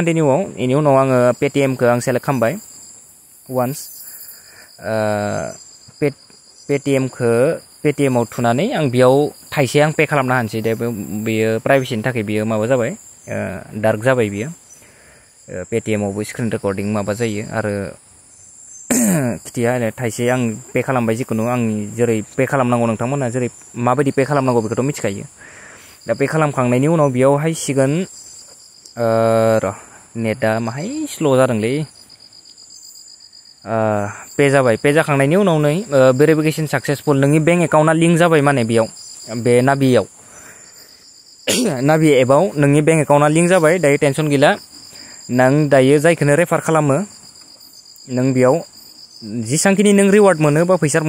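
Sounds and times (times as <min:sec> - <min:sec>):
man speaking: 0:00.0 - 0:02.6, 0:03.5 - 0:04.0, 0:04.8 - 0:14.6, 0:15.5 - 0:18.0, 0:18.9 - 0:25.4, 0:26.1 - 0:28.1, 0:29.0 - 0:32.0, 0:33.7 - 0:40.1, 0:41.5 - 0:44.6, 0:45.3 - 0:47.1, 0:48.1 - 0:51.0.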